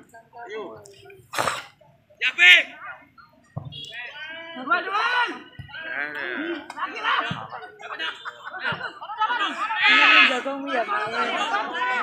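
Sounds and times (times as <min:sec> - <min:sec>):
spectators shouting: 0:03.9 - 0:12.0.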